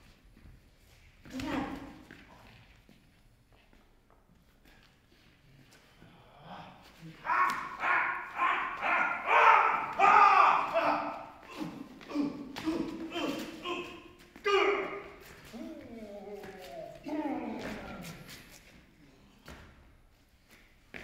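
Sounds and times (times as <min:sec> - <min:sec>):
people shouting and grunting: 0:06.0 - 0:19.6
louder cry: 0:07.1 - 0:18.3
thumps of feet and blows: 0:07.2 - 0:18.6.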